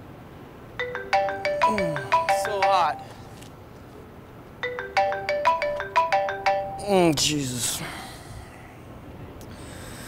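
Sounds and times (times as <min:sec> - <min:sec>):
mobile phone ringtone: 0:00.8 - 0:03.2, 0:04.6 - 0:07.0.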